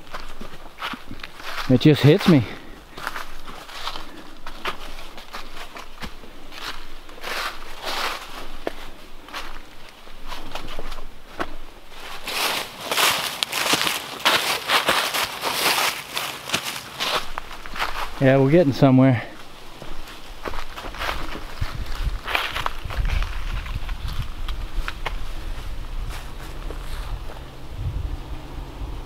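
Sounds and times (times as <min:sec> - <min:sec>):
footsteps through dry leaves: 0:00.0 - 0:27.7.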